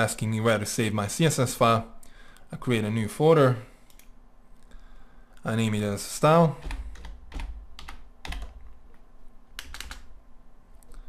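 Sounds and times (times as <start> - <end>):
computer keyboard keystrokes: 6.6 - 8.8, 9.6 - 10.1.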